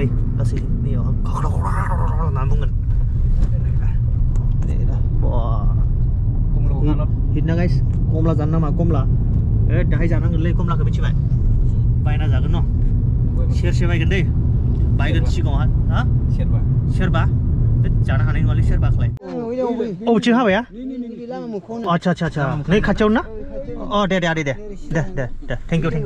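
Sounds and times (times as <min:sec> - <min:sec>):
people talking: 0:00.0 - 0:02.8, 0:04.6 - 0:05.9, 0:06.6 - 0:09.1, 0:15.0 - 0:26.0
vehicle rumble from inside: 0:00.0 - 0:19.2, 0:22.0 - 0:26.0.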